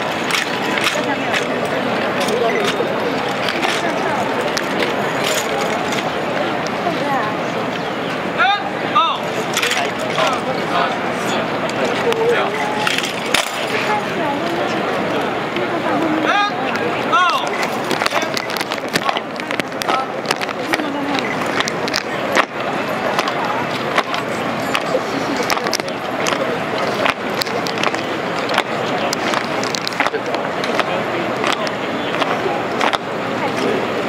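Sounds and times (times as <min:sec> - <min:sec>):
rifles clacking: 0:00.0 - 0:06.1, 0:09.2 - 0:10.4, 0:12.5 - 0:14.0, 0:17.3 - 0:22.5
crowd chatter: 0:00.0 - 0:34.0
person shouting commands: 0:08.4 - 0:09.2.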